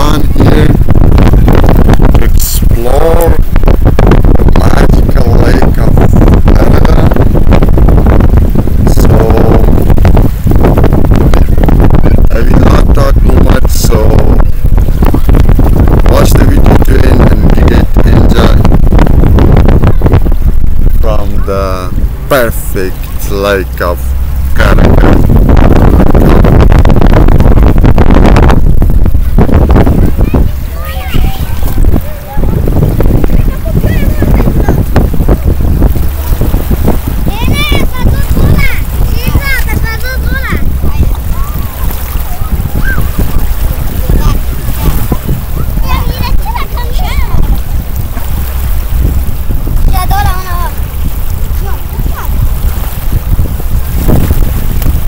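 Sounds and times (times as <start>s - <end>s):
lake waves lapping at shore: 0.0s - 26.0s, 28.8s - 55.0s
wind buffeting microphone: 0.0s - 55.0s
faint voices: 29.6s - 48.9s, 49.6s - 53.0s
distant voices calling out: 29.8s - 36.3s.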